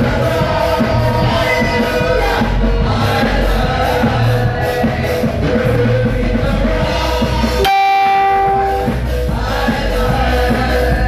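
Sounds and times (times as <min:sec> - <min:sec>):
live gospel band music: 0:00.0 - 0:11.0
bright sustained note: 0:07.6 - 0:09.0.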